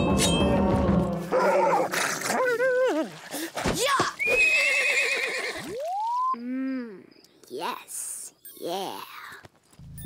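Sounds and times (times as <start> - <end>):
cartoon horse whinnying: 4.2 - 5.8.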